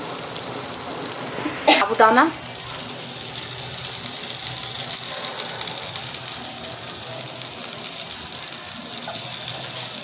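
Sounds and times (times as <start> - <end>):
oil sizzling in a frying pan: 0.0 - 10.0.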